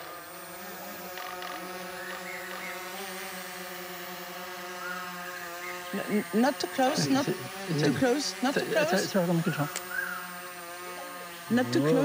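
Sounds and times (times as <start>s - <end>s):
drone propellers buzzing: 0.0s - 12.0s.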